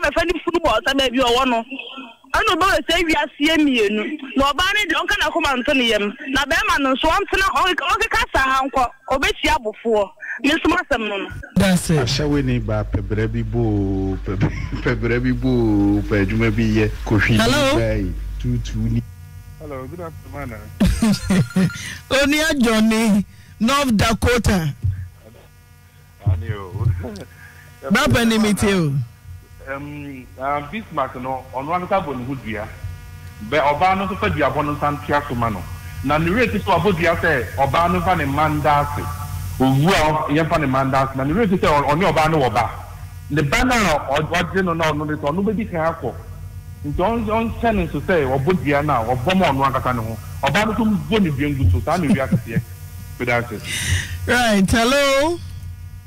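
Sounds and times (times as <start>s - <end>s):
steady electrical hum: 0.0s - 56.0s
person speaking: 0.9s - 25.5s, 26.2s - 29.0s, 46.9s - 52.6s, 53.2s - 55.5s.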